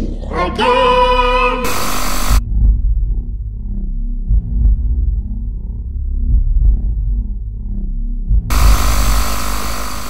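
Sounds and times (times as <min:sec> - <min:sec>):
tv static hiss: 0:01.7 - 0:02.4, 0:08.5 - 0:10.0
throbbing bass beat: 0:01.7 - 0:03.6, 0:04.2 - 0:10.0.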